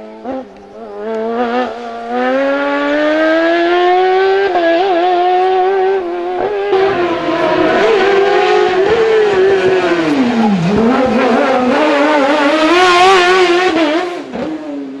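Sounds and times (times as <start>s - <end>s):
race car engine revving: 0.0s - 15.0s.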